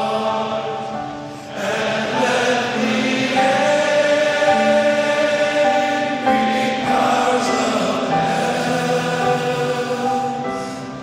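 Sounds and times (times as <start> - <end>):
choir singing a hymn: 0.0 - 11.0.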